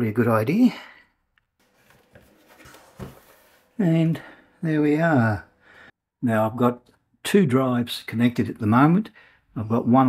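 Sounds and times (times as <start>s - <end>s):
faint rubbing and handling noise: 1.6s - 4.2s.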